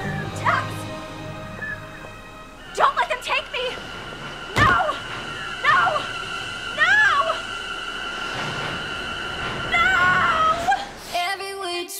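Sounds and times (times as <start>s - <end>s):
steady high ringing tone: 2.4s - 11.0s.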